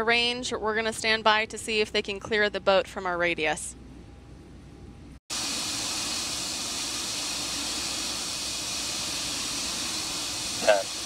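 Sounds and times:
gas venting hiss: 5.3s - 11.0s.

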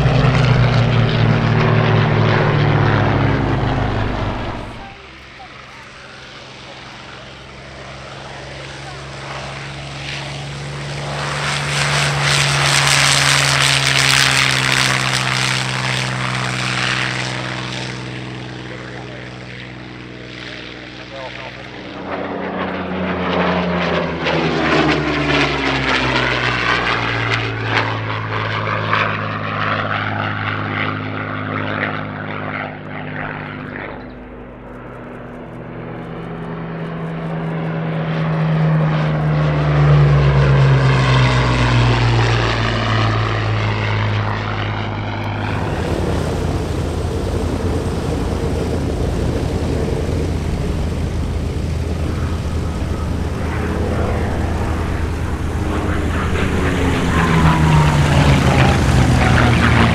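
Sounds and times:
propeller aircraft passing: 0.0s - 59.9s.

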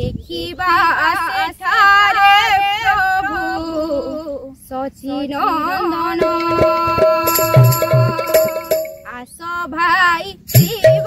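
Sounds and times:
woman singing: 0.0s - 11.0s
backing music with steady beat: 6.2s - 9.1s, 10.5s - 11.0s.

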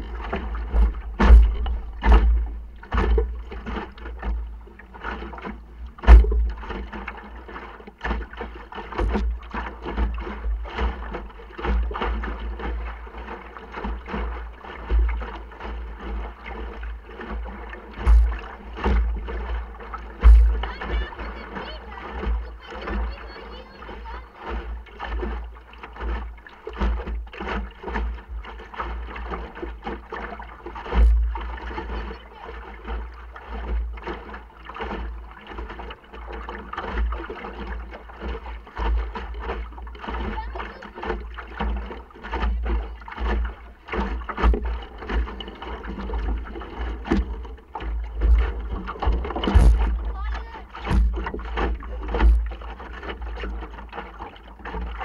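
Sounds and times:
deep continuous rumble: 0.0s - 55.0s
water slapping against hull: 0.0s - 55.0s.

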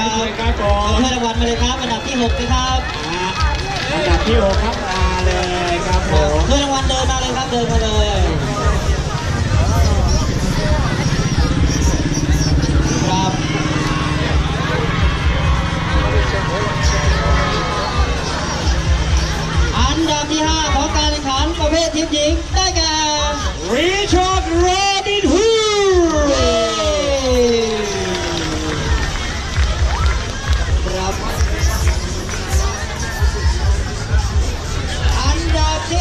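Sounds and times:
crowd chatter: 0.0s - 36.0s
music over pa system: 0.0s - 36.0s
heavy low rumble: 4.2s - 21.5s, 26.4s - 36.0s.

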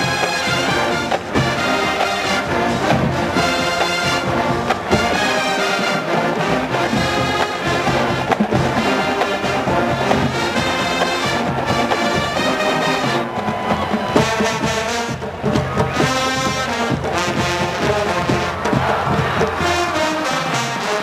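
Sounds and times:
marching band brass: 0.0s - 21.0s.

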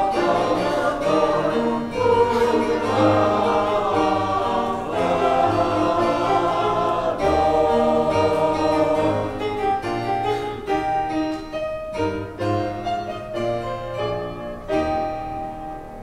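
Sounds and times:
church choir singing: 0.0s - 10.7s.

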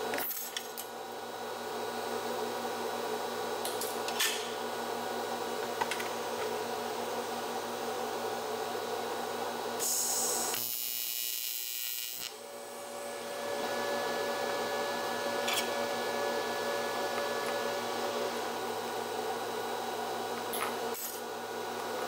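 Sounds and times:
welding arc buzzing: 9.8s - 13.4s.

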